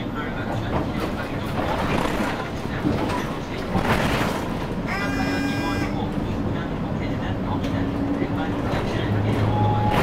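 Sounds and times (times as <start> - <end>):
bus engine drone: 0.0 - 10.0
road rumble: 0.0 - 10.0.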